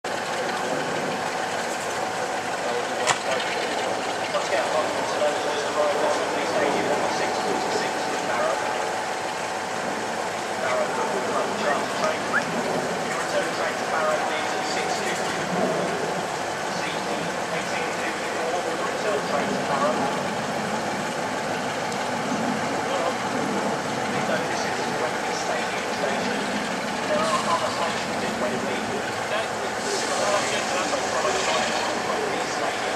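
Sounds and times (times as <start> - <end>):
diesel locomotive engine running: 0.0 - 32.9
faint steady whine: 0.1 - 32.9
background voices: 2.6 - 9.2, 10.4 - 16.0, 22.8 - 32.9.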